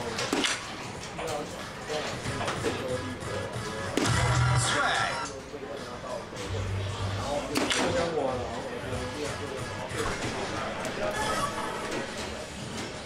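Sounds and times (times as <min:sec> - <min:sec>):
background music: 0:00.0 - 0:13.0
voices: 0:00.0 - 0:13.0
electronic darts machine sounds: 0:02.3 - 0:05.4.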